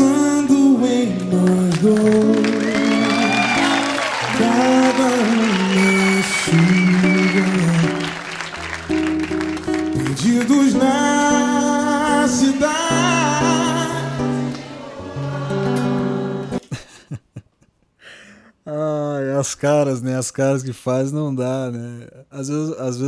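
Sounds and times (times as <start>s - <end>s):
man singing pop ballad: 0.0s - 8.2s, 10.0s - 14.5s
strummed acoustic guitar: 0.0s - 16.6s.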